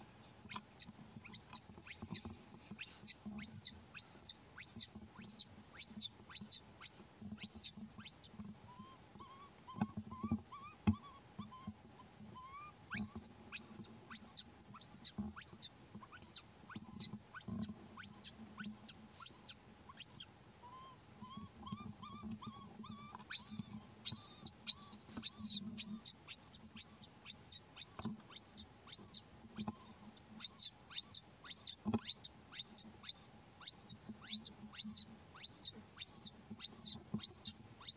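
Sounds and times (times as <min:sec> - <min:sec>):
baby monkey crying: 0:07.4 - 0:11.7, 0:12.4 - 0:29.7, 0:30.4 - 0:37.9.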